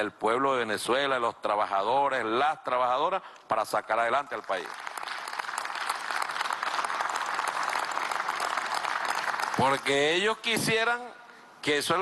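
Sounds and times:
group of people clapping: 4.2s - 10.2s.

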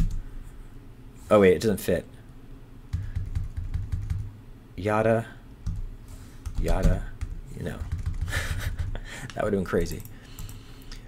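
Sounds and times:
computer keyboard keys pressed: 2.9s - 4.3s, 6.4s - 10.6s.

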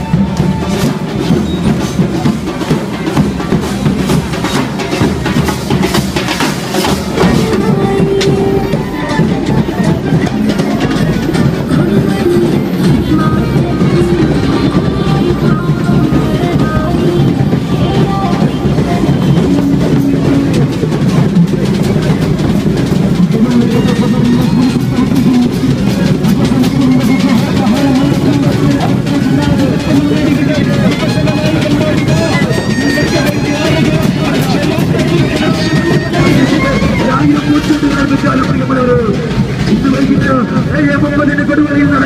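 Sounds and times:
drums: 0.0s - 42.0s
brass band playing: 23.3s - 39.3s.

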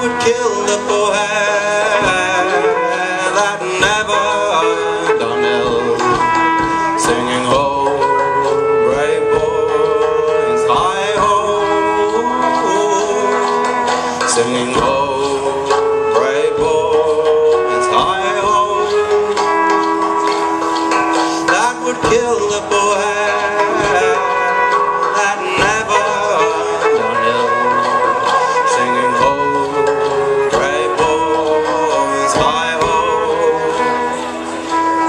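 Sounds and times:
folk band playing: 0.0s - 35.0s
trumpet holding wavering notes: 0.0s - 35.0s.

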